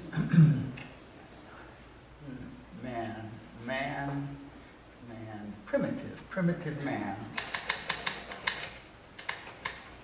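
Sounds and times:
typewriter keys clacking: 7.4 - 10.0.

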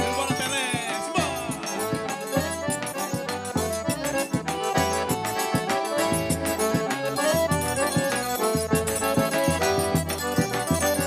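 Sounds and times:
accordion melody: 0.0 - 11.0.

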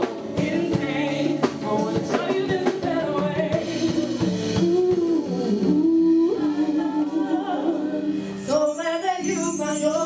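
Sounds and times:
instrumental accompaniment: 0.0 - 10.0
woman singing gospel: 0.0 - 10.0.

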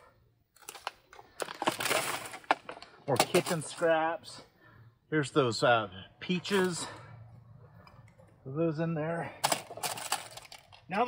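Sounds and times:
plastic containers crinkling: 0.5 - 4.0, 9.4 - 11.0.

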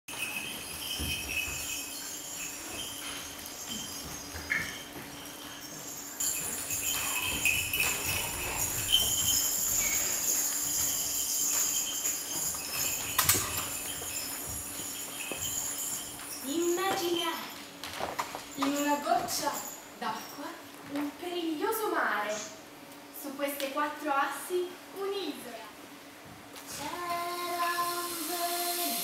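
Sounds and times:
high jingling tinkling: 0.0 - 20.6.

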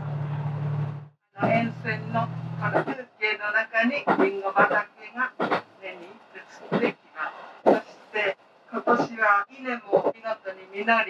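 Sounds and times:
person speaking: 1.4 - 11.0.

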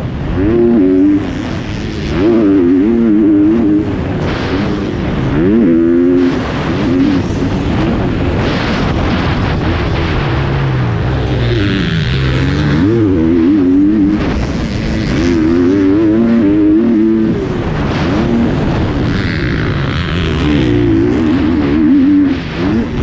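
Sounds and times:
motocross bike engine revving: 0.0 - 23.0.

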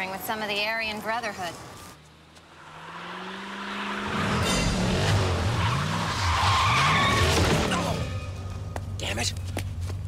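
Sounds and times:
tyres skidding and squealing: 1.3 - 9.0
car engine revving: 2.2 - 8.5.

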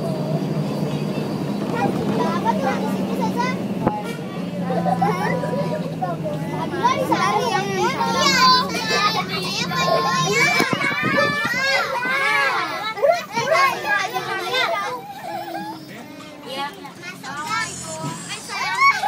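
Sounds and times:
children talking and calling out: 0.0 - 19.0.

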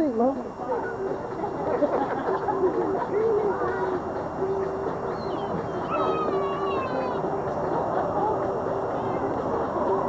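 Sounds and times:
background voices outdoors: 0.0 - 10.0.

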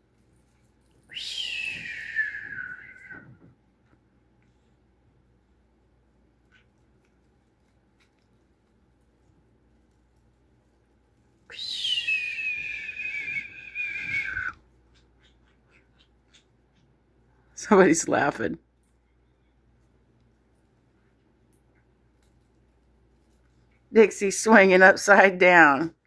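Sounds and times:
parrot whistling call: 1.1 - 3.3, 11.5 - 14.6.

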